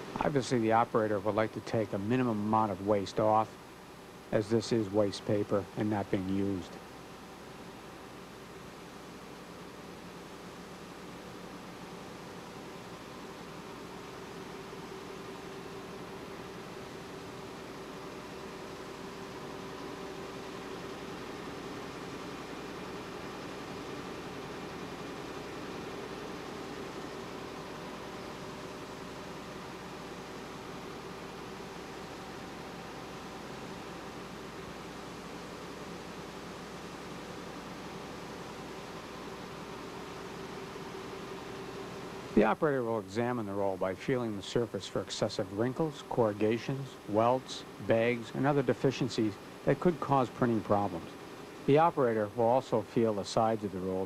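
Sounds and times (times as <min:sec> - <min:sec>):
printing press droning: 0:00.0 - 0:54.0.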